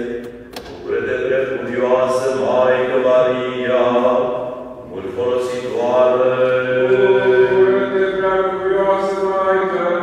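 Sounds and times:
liturgical chanting: 0:00.0 - 0:10.0.

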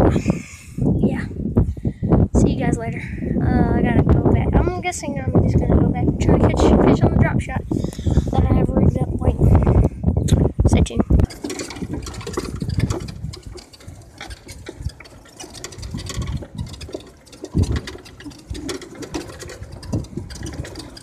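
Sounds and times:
wind rumble on microphone: 0:00.0 - 0:21.0
rattles and knocks: 0:11.1 - 0:21.0
golf cart motor running: 0:11.2 - 0:21.0.

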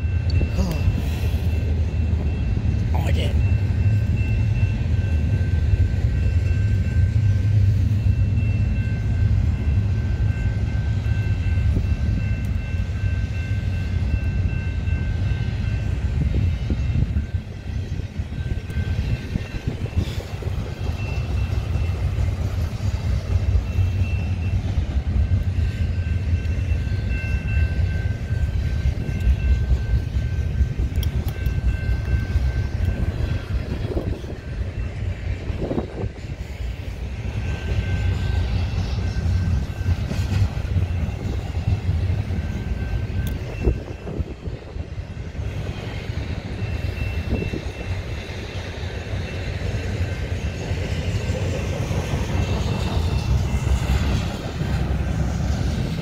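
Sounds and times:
high-pitched ringing tone: 0:00.0 - 0:56.0
train wheels rumbling on rail: 0:00.0 - 0:56.0.

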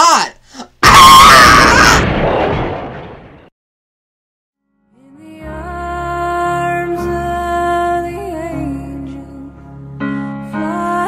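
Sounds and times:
explosion blast: 0:00.8 - 0:03.5.

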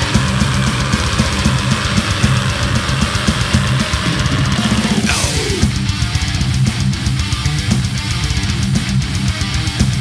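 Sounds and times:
distorted electric guitars: 0:00.0 - 0:10.0
drum kit: 0:00.0 - 0:10.0
metalcore band playing: 0:00.0 - 0:10.0.

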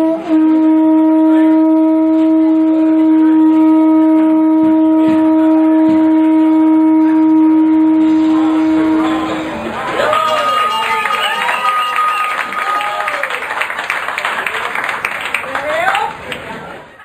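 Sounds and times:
conch shell horn note: 0:00.0 - 0:09.8.

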